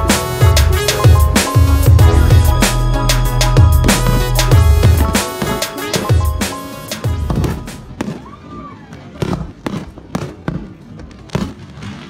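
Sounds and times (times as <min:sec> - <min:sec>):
fireworks bangs: 0:00.8 - 0:12.0.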